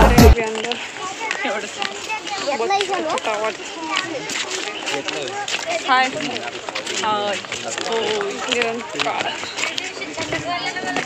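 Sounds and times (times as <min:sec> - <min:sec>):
background voices: 0:00.0 - 0:11.0
people talking close: 0:00.0 - 0:11.0.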